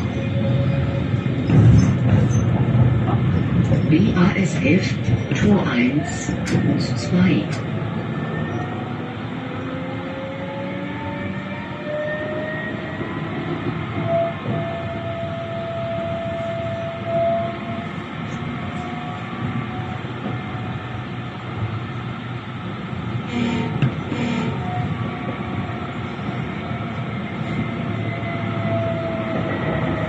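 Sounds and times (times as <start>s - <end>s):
tram motor whine: 0.0s - 30.0s
tram wheels rumbling on rails: 0.0s - 30.0s.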